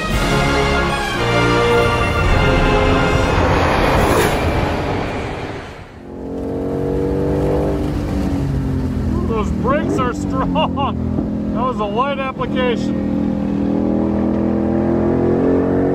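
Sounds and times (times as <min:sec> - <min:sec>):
music intro: 0:00.0 - 0:06.0.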